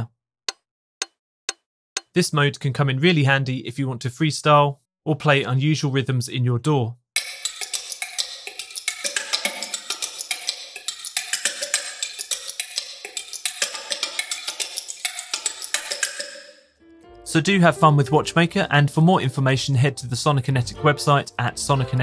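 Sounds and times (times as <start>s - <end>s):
sampled watch ticks rhythm: 0.0s - 2.2s, 7.2s - 16.7s.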